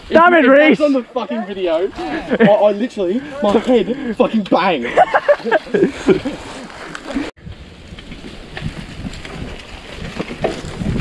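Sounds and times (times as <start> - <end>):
tyres rumbling on dirt: 0.0 - 11.0
bike clicks and rattles: 6.3 - 11.0
wind buffeting microphone: 7.3 - 11.0.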